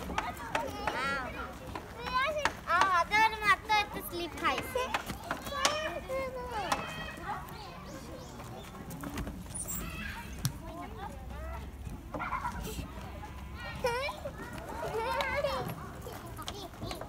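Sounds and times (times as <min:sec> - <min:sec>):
children chattering: 0:00.0 - 0:17.0.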